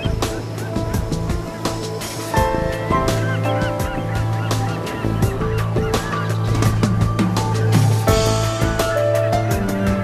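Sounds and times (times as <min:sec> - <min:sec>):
gulls crying: 0:00.0 - 0:10.0
instrumental music: 0:00.0 - 0:10.0.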